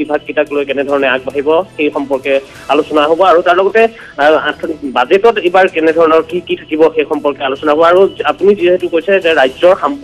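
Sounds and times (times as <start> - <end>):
man talking over telephone: 0.0 - 10.0.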